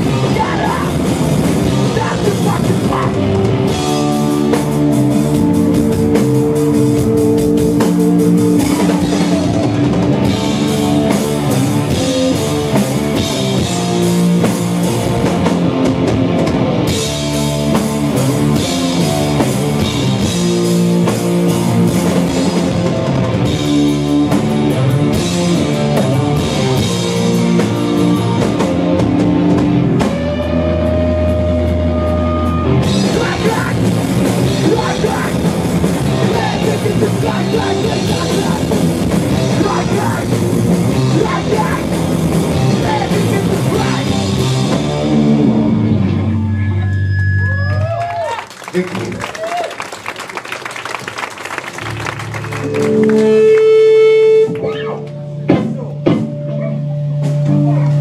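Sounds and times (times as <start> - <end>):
drum kit: 0.0 - 46.2, 51.8 - 58.0
electric guitars: 0.0 - 49.5, 50.9 - 58.0
bass guitar: 0.0 - 58.0.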